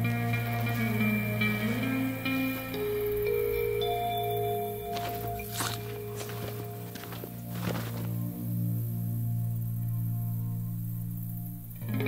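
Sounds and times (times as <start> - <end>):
film score of low notes: 0.0 - 12.0
footsteps on dirt road: 4.8 - 8.3.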